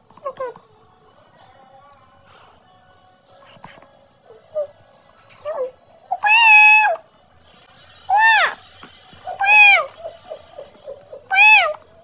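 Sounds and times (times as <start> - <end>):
cat meowing: 6.2 - 7.0, 9.3 - 9.9, 11.2 - 11.8.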